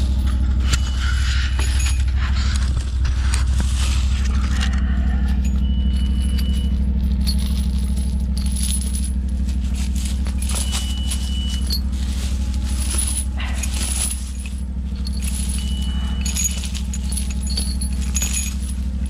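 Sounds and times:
chain links clinking: 0.0 - 19.0
tractor engine idling: 0.0 - 19.0.

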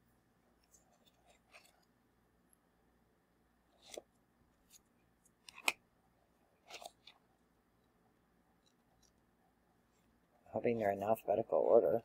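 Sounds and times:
book pages turning: 0.6 - 1.9, 3.7 - 5.8, 6.6 - 7.3.

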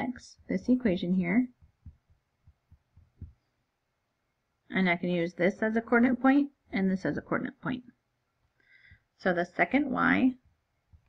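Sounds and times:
marker knocking on paper: 1.5 - 3.5.

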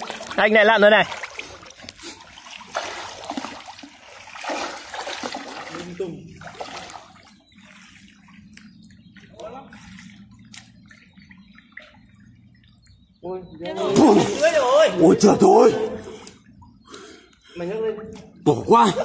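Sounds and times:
river water splashing: 0.0 - 13.0, 13.6 - 15.0
water lapping: 0.0 - 19.0
low steady hum: 1.1 - 19.0.

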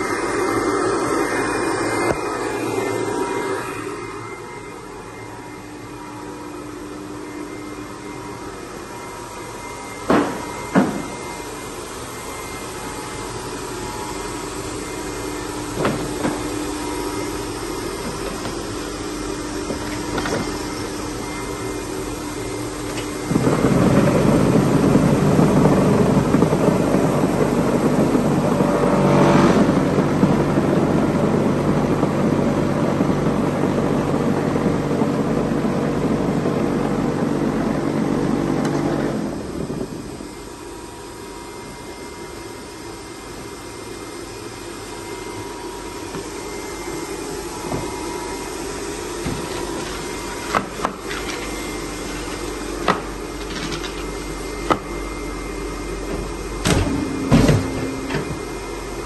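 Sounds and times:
machine motor humming: 0.0 - 59.0
quieter machine hum: 0.0 - 59.0.

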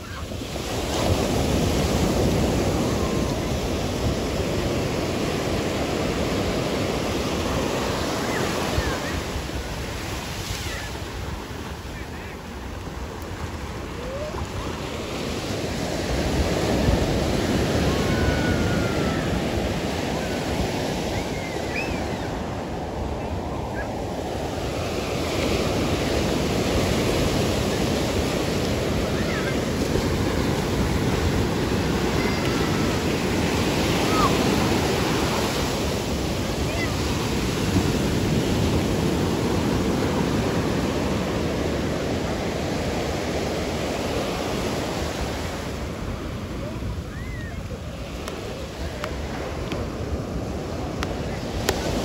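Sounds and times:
ocean surf on sandy beach: 0.0 - 52.0.

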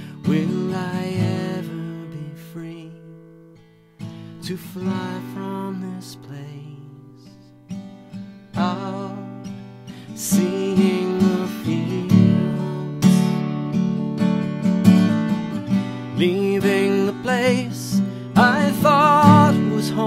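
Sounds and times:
man singing with vibrato: 0.0 - 3.3, 4.4 - 7.4, 8.6 - 13.4, 16.1 - 20.0
acoustic guitar strumming: 0.0 - 20.0.

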